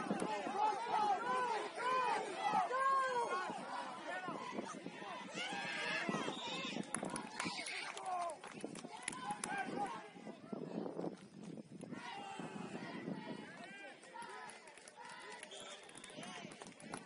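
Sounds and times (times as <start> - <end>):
people talking and calling out: 0.0 - 17.0.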